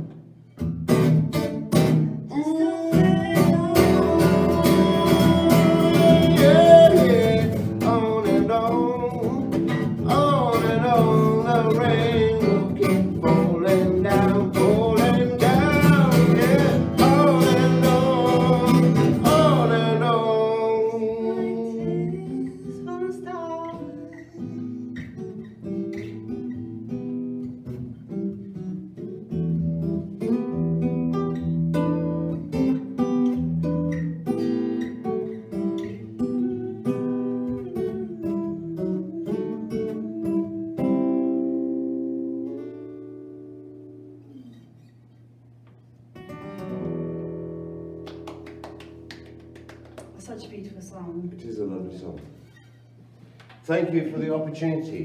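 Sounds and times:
acoustic guitar strumming: 0.0 - 55.0
person singing with vibrato: 2.3 - 24.9, 35.8 - 42.3.

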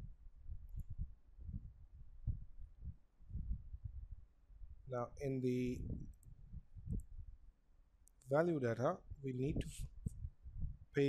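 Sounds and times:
faint low thumps: 0.0 - 7.4
low rumble: 0.0 - 7.4.

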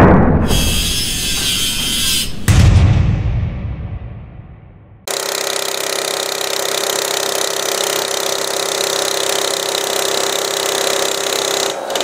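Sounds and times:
heavy impact boom: 2.5 - 5.1.

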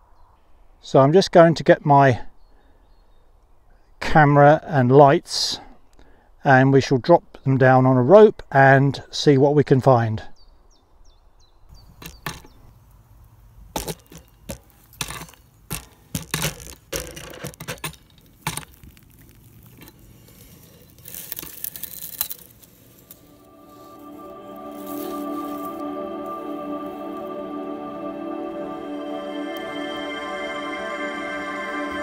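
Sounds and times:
scratchy rustle: 18.2 - 23.4
calm ambient music: 21.1 - 32.0.

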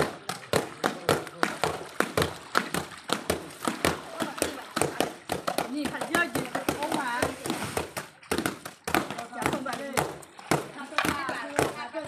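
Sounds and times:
wet cloth slapping thuds: 0.0 - 11.9.

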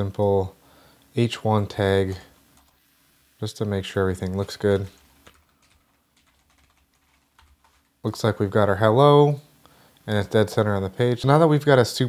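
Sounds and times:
computer keyboard typing: 4.2 - 8.0.

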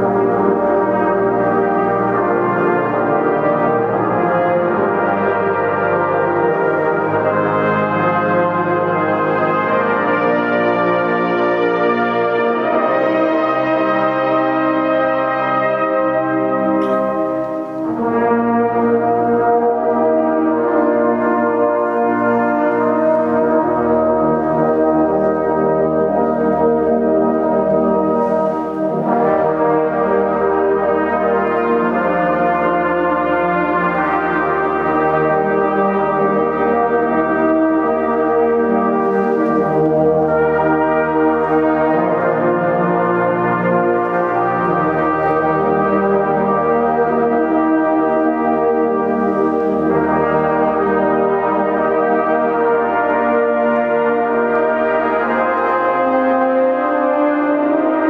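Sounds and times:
brass ensemble playing chords: 0.0 - 58.0.

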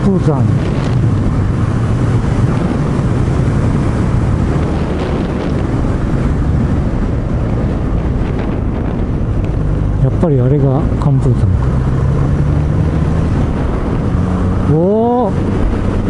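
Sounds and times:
wind rushing over microphone: 0.0 - 16.0.

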